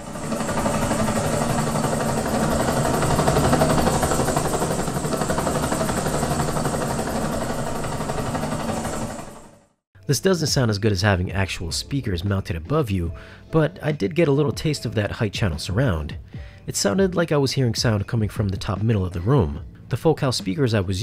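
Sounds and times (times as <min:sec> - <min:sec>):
helicopter rotor and engine: 0:00.0 - 0:09.8.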